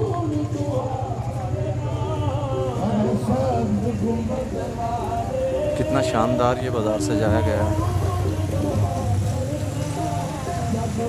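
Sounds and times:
motorcycle engine running: 0:00.0 - 0:11.0
person singing devotional song: 0:00.0 - 0:11.0.

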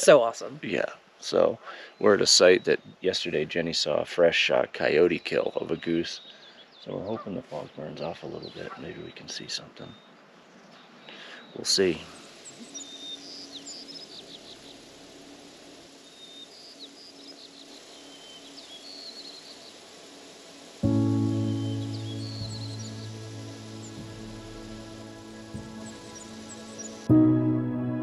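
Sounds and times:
small birds singing: 0:01.1 - 0:27.2
soft music with held chord: 0:20.7 - 0:28.0.

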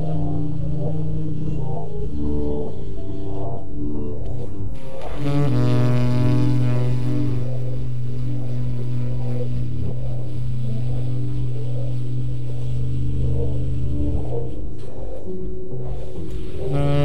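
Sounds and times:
faint wavering notes: 0:00.0 - 0:17.0
long low held jazz note: 0:04.8 - 0:14.7.

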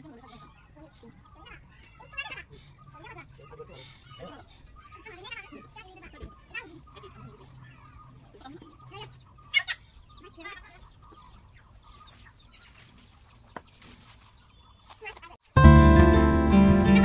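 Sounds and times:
plucked-string background music: 0:15.6 - 0:17.0.

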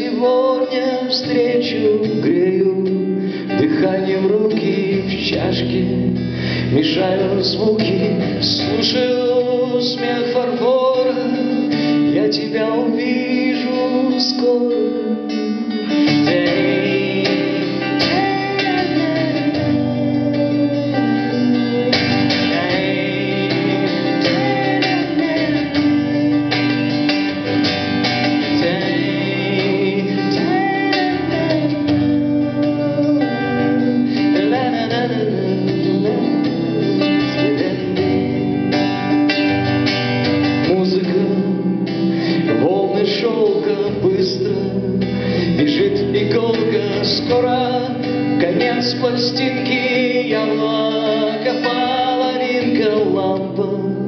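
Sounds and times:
acoustic guitar strumming chords: 0:00.0 - 0:54.0.

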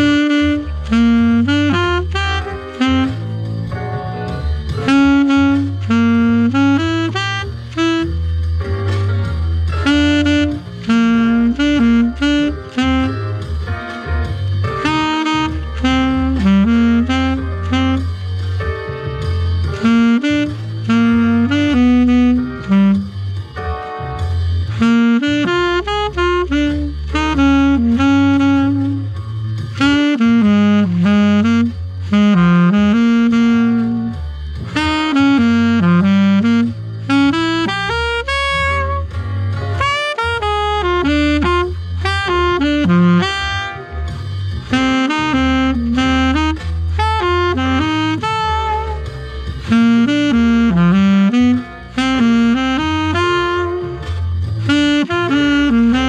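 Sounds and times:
alto saxophone playing blues: 0:00.0 - 0:56.0.

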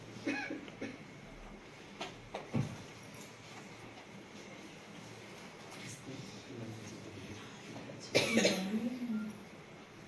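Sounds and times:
person coughing: 0:00.2 - 0:01.0, 0:08.1 - 0:08.8.

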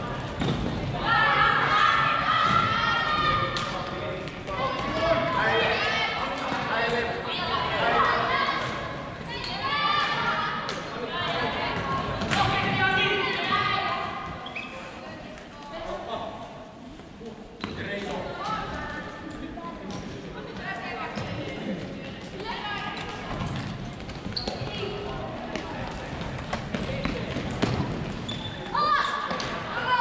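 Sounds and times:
shoe squeaks on court floor: 0:14.4 - 0:15.0, 0:23.4 - 0:25.0, 0:28.2 - 0:28.7.

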